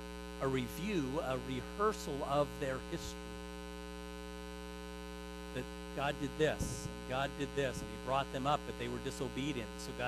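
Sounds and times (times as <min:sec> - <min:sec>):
electrical mains hum: 0:00.0 - 0:10.0
man's voice: 0:00.4 - 0:03.2, 0:05.6 - 0:10.0.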